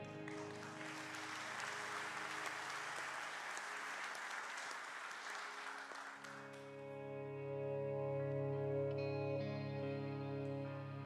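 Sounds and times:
worship song chord: 0.0s - 3.4s, 6.2s - 11.0s
congregation applauding: 0.0s - 6.9s
sustained low music notes: 6.4s - 11.0s.

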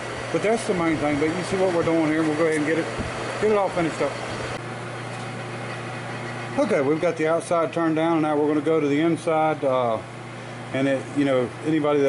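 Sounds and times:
metal lathe humming: 0.0s - 12.0s.

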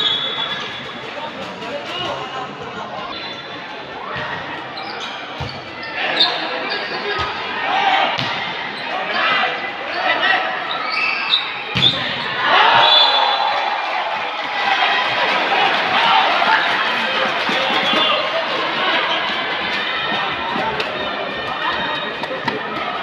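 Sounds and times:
babble of spectators' voices: 0.0s - 23.0s
crowd shouting and cheering: 0.0s - 23.0s.

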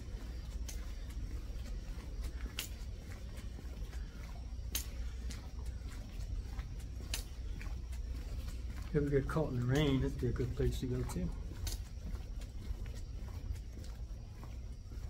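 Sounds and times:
low steady rumble: 0.0s - 15.0s
sharp footstep taps: 0.3s - 15.0s.

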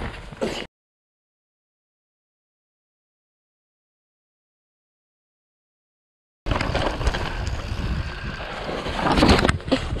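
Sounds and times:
mountain bike clattering on rocks: 6.5s - 9.8s
wind rumbling on microphone: 6.5s - 10.0s.

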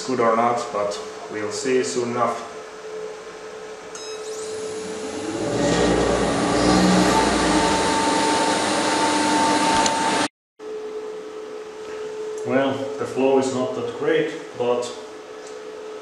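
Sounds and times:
electric motor running with whine: 4.2s - 10.3s.

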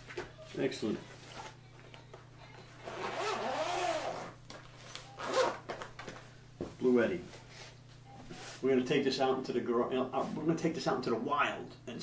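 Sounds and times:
zipper pulled shut: 2.8s - 4.4s, 5.2s - 5.6s.

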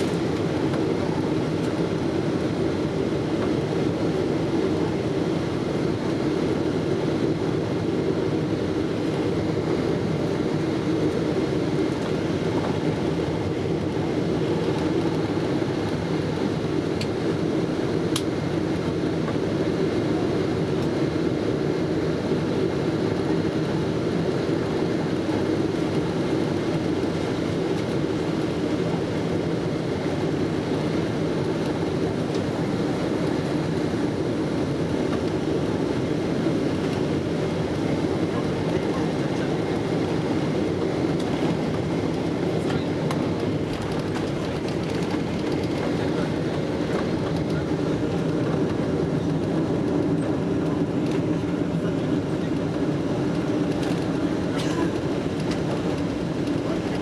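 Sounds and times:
airplane cabin engine and air noise: 0.0s - 57.0s.

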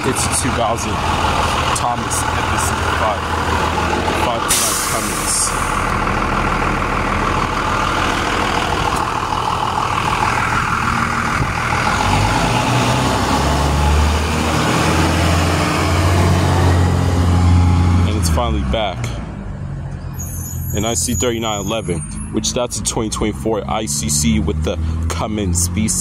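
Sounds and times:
diesel bus engine idling and revving: 0.0s - 26.0s.

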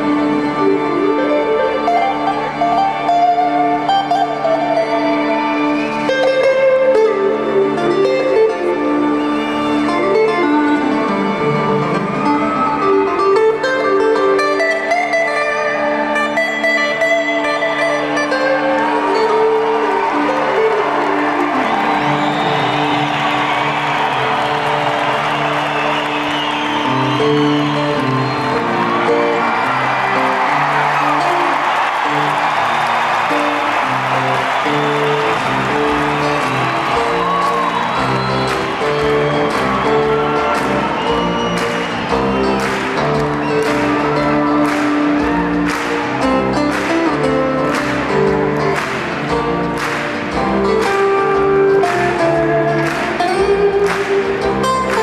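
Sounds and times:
crowd applauding and cheering: 0.0s - 55.0s
acoustic guitar strumming: 10.0s - 55.0s.

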